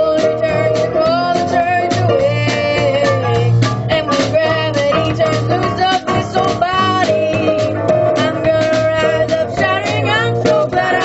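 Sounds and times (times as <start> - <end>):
band playing gospel song: 0.0 - 11.0.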